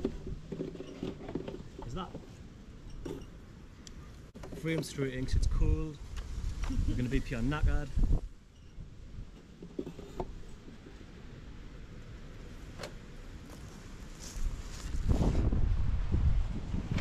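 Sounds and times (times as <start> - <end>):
wind rumbling on microphone: 5.2 - 9.4, 14.2 - 17.0.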